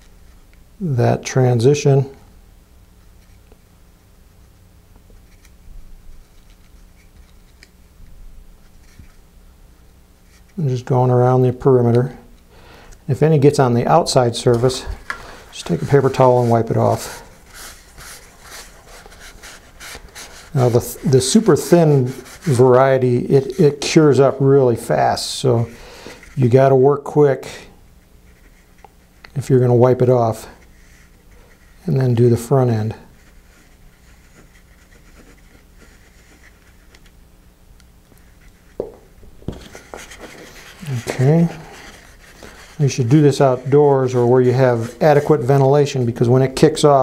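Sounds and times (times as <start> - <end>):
faint handling sounds: 2.9 - 37.2, 38.1 - 47.0
paper towel rubbing paper: 13.2 - 26.6, 28.3 - 36.9, 39.4 - 47.0.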